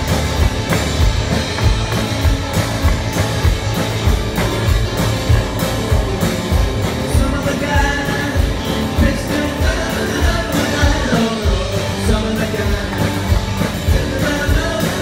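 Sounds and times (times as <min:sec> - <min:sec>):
rock band playing loudly: 0:00.0 - 0:15.0
person singing: 0:06.8 - 0:15.0.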